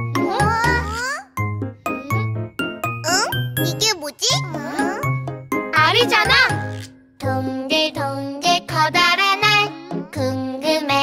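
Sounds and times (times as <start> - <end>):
bouncy children's song music: 0.0 - 11.0
cartoon children's voices speaking: 0.2 - 1.3, 3.0 - 5.2.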